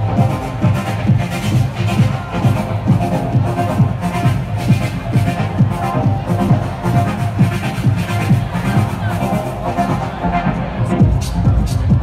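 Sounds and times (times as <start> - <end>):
loud techno music: 0.0 - 12.0.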